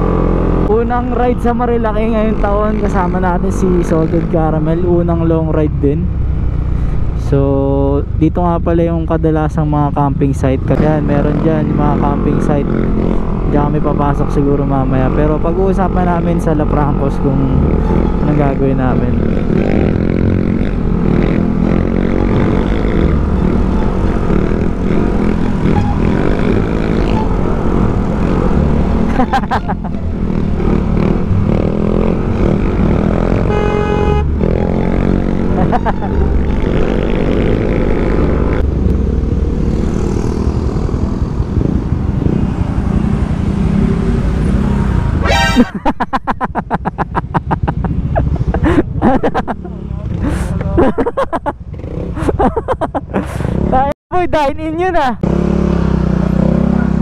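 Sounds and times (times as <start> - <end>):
wind noise: 34.3 - 45.7, 46.3 - 49.6.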